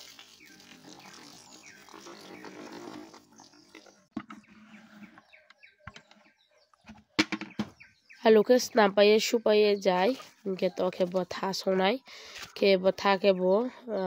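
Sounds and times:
water pouring into colander: 0:00.0 - 0:03.8.

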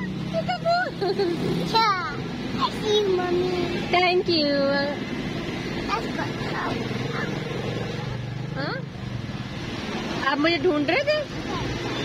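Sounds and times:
vehicle engine humming: 0:00.0 - 0:12.0
child saying huh: 0:01.6 - 0:03.8, 0:05.8 - 0:07.5.

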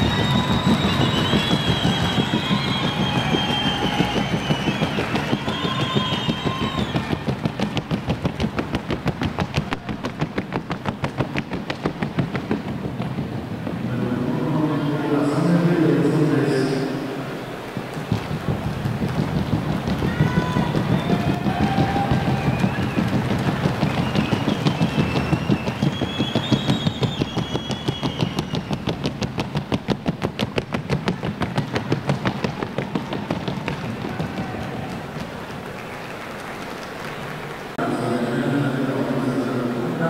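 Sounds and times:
clatter of horse hooves: 0:00.0 - 0:14.0, 0:17.6 - 0:37.5.

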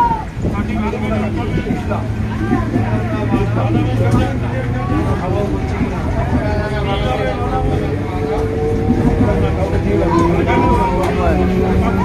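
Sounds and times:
electric train rumbling: 0:00.0 - 0:12.0
people talking: 0:00.0 - 0:12.0.

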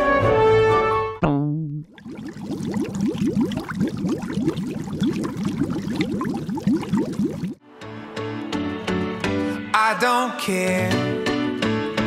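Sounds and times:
bubbling gurgling pops: 0:01.9 - 0:07.6.

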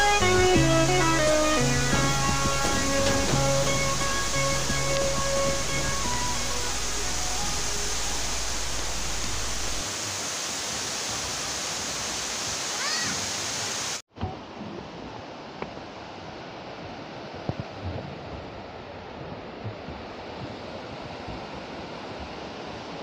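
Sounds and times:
plucked music: 0:00.0 - 0:09.8
quiet ambient sound: 0:00.0 - 0:09.8
waterfall and river rushing: 0:00.0 - 0:23.0.

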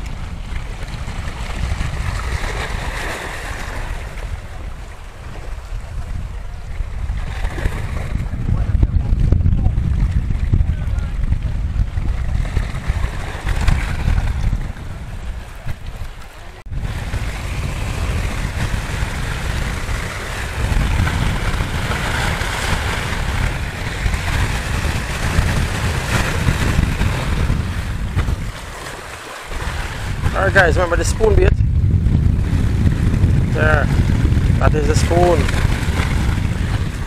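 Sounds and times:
waves breaking on rocks: 0:00.0 - 0:08.8, 0:09.8 - 0:31.6, 0:32.2 - 0:37.0
wind buffeting microphone: 0:00.0 - 0:37.0.

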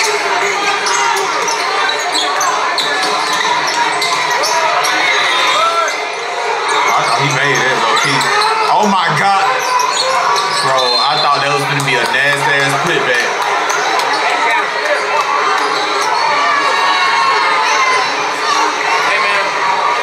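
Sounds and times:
crowd talking and shouting: 0:00.0 - 0:20.0.

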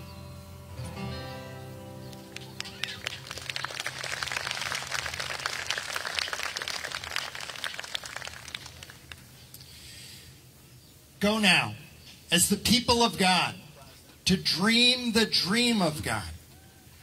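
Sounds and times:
crowd applauding: 0:02.1 - 0:09.3.

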